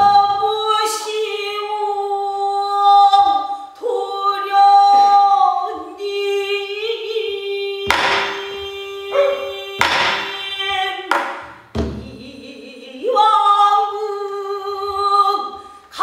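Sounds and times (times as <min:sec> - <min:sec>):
woman singing long wavering notes: 0:03.8 - 0:11.0.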